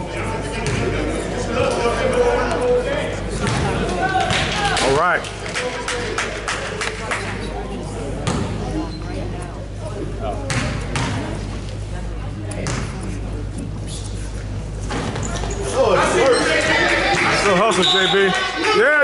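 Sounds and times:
spectators' voices: 0.0 - 19.0.

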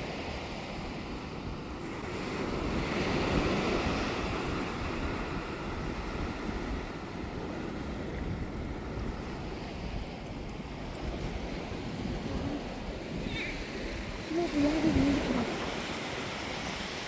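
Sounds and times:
sea surf washing: 0.0 - 17.0
wind on microphone: 0.0 - 17.0.

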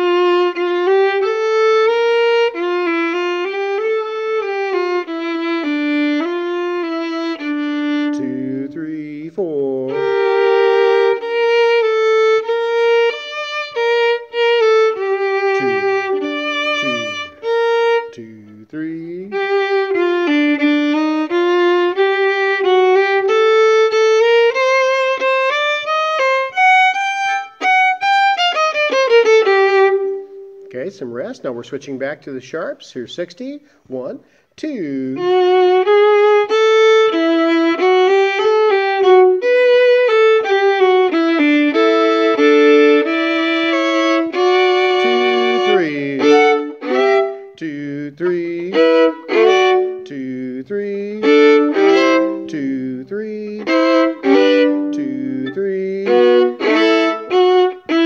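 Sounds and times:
solo violin melody: 0.0 - 31.6, 34.7 - 58.0.

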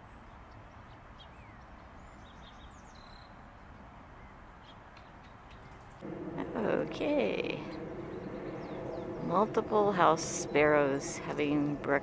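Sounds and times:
low outdoor rumble: 6.0 - 12.0.

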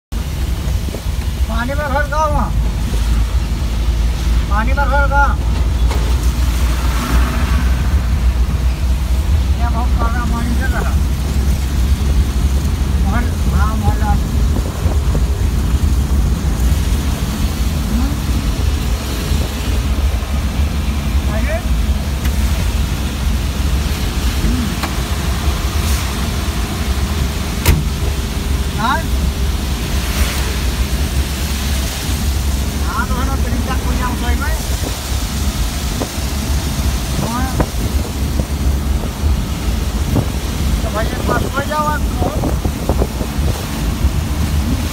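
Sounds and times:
van engine rumble: 0.0 - 44.9
tyres and rain hiss: 0.1 - 44.9
sharp knock: 27.6 - 27.9.

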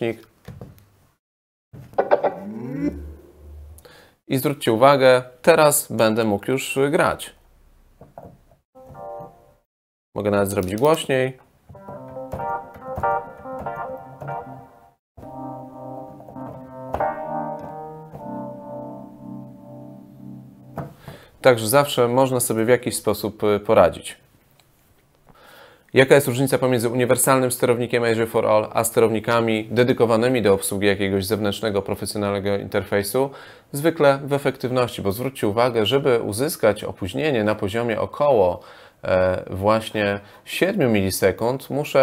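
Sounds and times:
gliding electronic tone: 2.0 - 3.9
low hum: 2.2 - 4.1
electric piano chords: 11.8 - 20.9.

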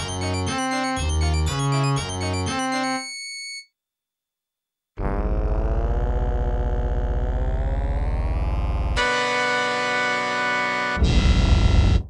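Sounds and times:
electronic synthesizer music: 0.0 - 3.1, 5.0 - 12.0.

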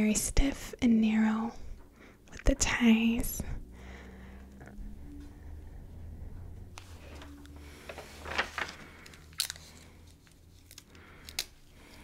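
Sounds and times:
paper crinkling: 6.8 - 12.0.

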